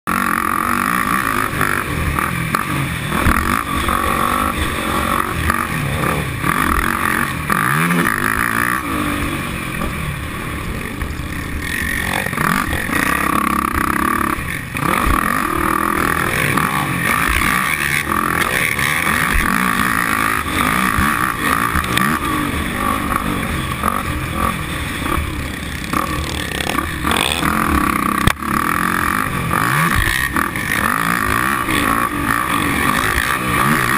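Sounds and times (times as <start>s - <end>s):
quad engine running hard: 0.1s - 33.9s.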